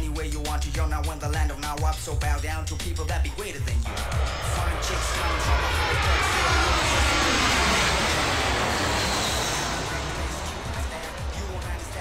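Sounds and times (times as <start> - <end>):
background music: 0.0 - 12.0
jet airliner rushing: 3.4 - 12.0.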